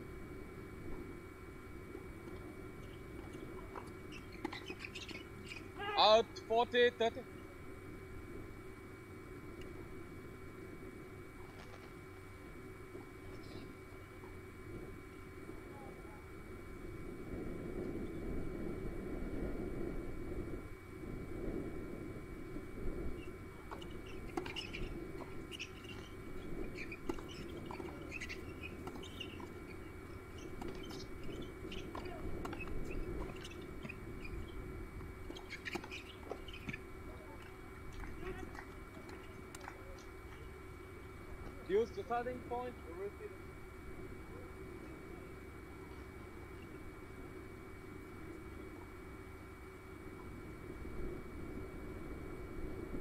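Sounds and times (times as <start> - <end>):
murmur of distant voices: 36.9 - 50.1.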